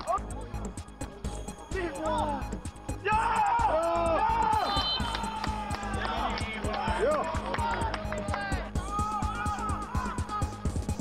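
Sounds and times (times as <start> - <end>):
background music: 0.0 - 11.0
men shouting: 3.0 - 7.8, 8.6 - 10.6.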